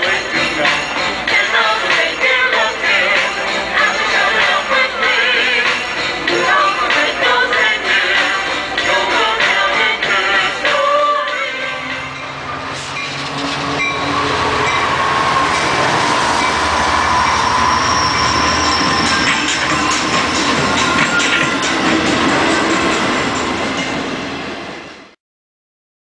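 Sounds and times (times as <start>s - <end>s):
train wheels rushing on rails: 0.0s - 25.2s
high wheel squeal: 0.1s - 24.3s.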